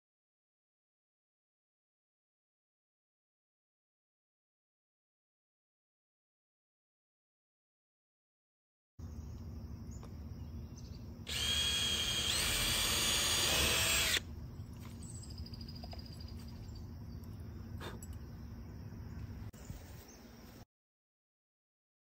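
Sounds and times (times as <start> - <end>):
cordless drill driving a screw: 11.3 - 14.2.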